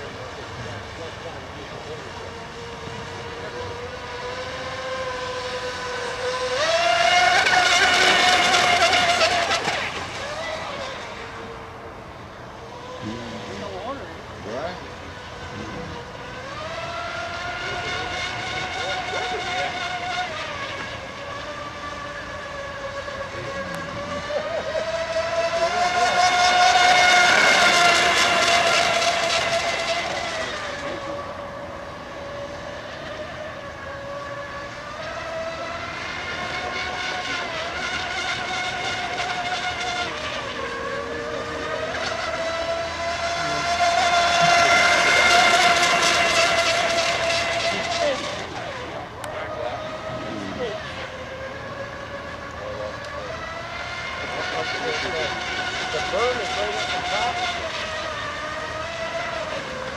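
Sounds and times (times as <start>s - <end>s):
model boat motor whine: 0.0s - 59.9s.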